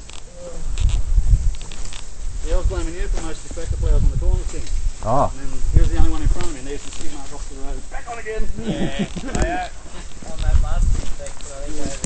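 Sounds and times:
men talking: 0:02.4 - 0:12.0.

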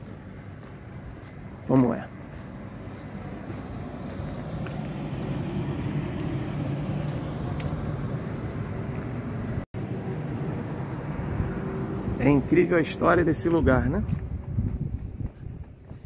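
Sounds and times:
traffic engine rumble: 0:00.0 - 0:16.0.

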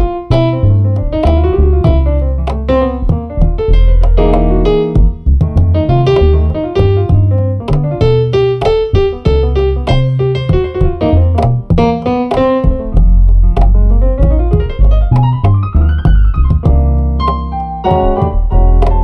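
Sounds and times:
plucked upright bass: 0:00.0 - 0:19.0.

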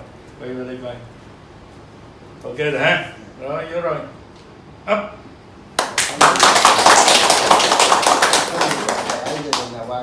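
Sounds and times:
people clapping: 0:05.8 - 0:10.0.

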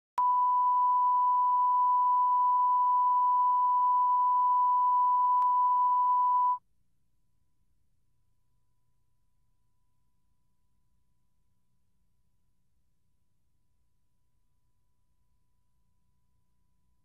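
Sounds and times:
electronic test tone: 0:00.2 - 0:06.6.

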